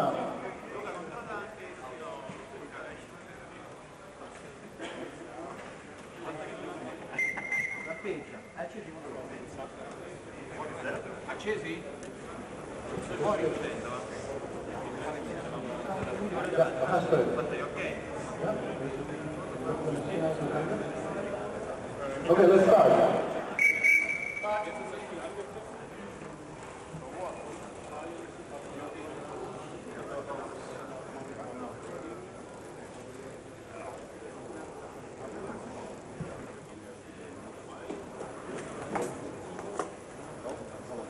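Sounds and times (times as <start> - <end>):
murmur of voices: 0.0 - 41.0
high whistle tone: 7.2 - 8.1, 23.6 - 24.9.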